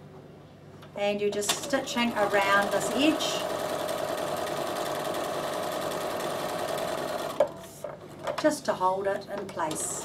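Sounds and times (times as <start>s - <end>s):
sewing machine running: 1.4s - 7.5s.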